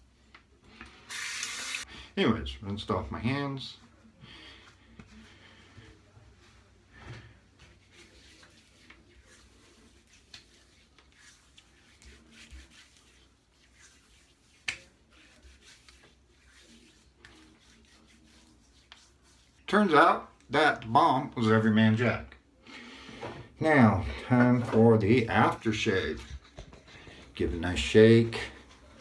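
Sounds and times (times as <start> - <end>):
hands rubbing skin: 7.6 - 19.6.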